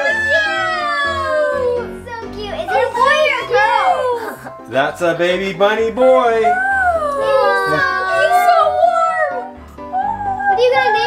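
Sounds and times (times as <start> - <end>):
children exclaiming excitedly: 0.0 - 4.5, 6.3 - 11.0
background music: 0.0 - 11.0.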